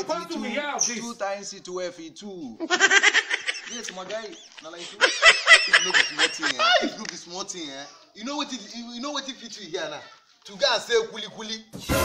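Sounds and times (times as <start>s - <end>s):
man laughing: 2.6s - 7.1s.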